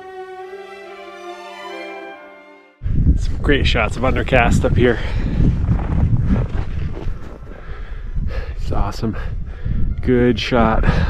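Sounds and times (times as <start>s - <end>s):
wind buffeting microphone: 2.8s - 11.0s.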